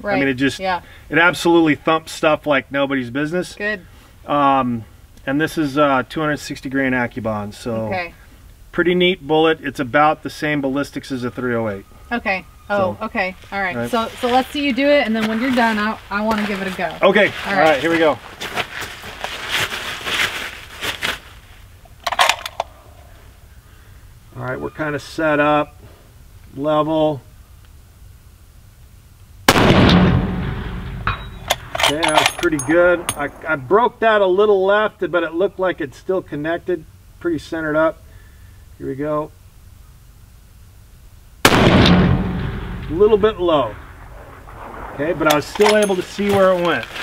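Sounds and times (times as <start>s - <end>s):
rustling and handling noise: 13.3s - 22.8s, 45.2s - 47.0s
rifle shot with echo: 29.5s - 33.8s, 41.5s - 46.4s.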